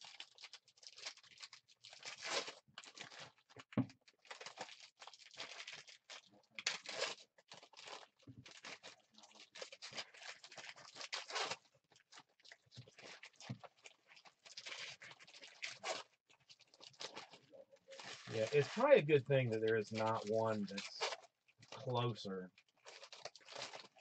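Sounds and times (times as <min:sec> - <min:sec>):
foil wrappers crinkling and tearing: 0:00.0 - 0:18.9, 0:19.6 - 0:24.0.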